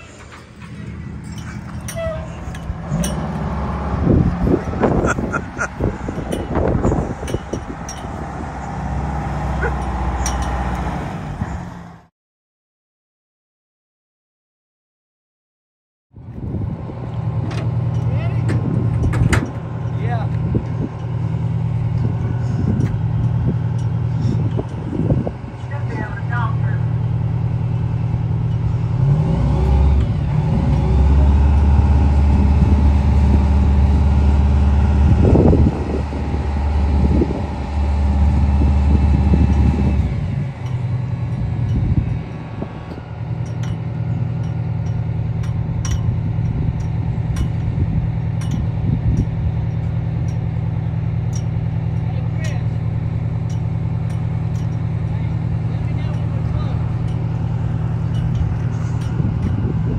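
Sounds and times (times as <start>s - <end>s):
fire truck engine running: 0.0s - 12.1s, 16.2s - 59.9s.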